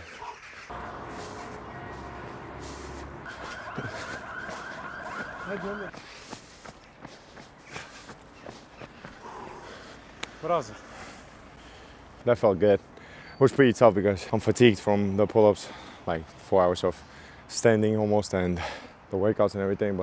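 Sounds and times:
distant wavering siren: 0:00.7 - 0:05.9
low traffic hum: 0:00.7 - 0:20.0
man speaking: 0:05.4 - 0:06.0.

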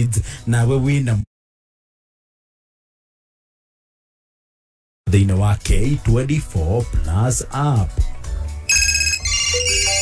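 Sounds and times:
electronic jingle: 0:08.7 - 0:10.0.

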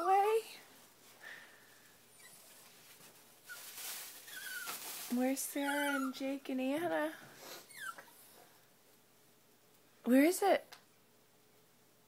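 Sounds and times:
dog whining: 0:02.1 - 0:02.6, 0:04.2 - 0:04.8, 0:05.6 - 0:06.2, 0:07.5 - 0:08.4
soft breathy sniff: 0:07.2 - 0:07.8.

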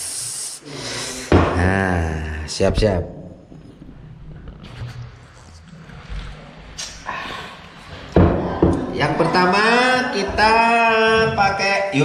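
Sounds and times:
dishes knocking on wooden table: 0:01.3 - 0:01.6.

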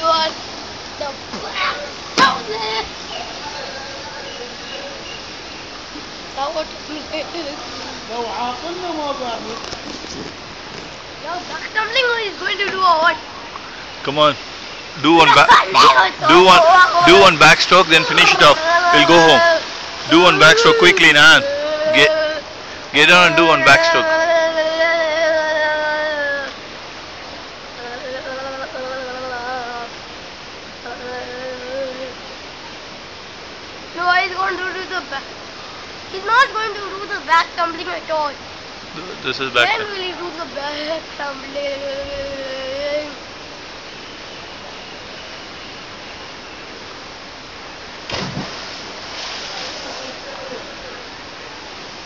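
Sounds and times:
outdoor background noise: 0:00.0 - 0:52.0
falling spray hiss: 0:47.8 - 0:52.0
diver splashing into pool: 0:48.0 - 0:50.3.

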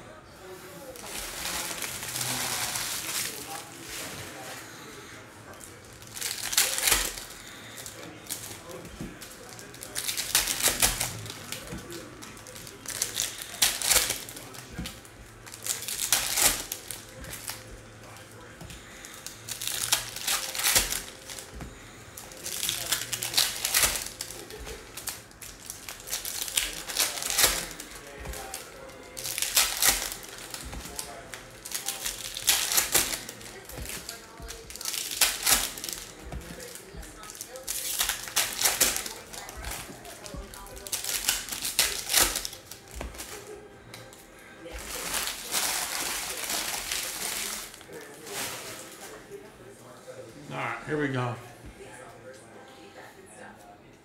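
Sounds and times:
foil wrappers crinkling: 0:00.4 - 0:49.5.

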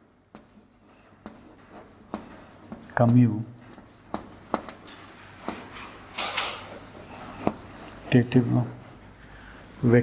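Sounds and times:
chalk tapping on board: 0:00.0 - 0:08.9
chalk scratching on chalkboard: 0:00.0 - 0:09.1.

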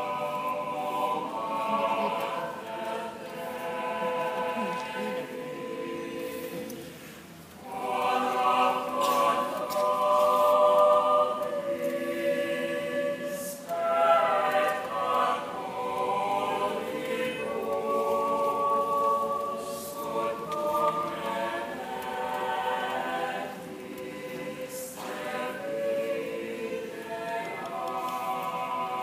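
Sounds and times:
mixed choir singing: 0:00.0 - 0:29.0.

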